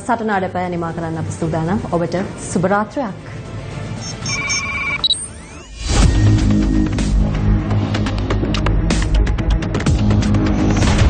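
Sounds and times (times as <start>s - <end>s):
electronic beeps over held tone: 4.0s - 5.8s.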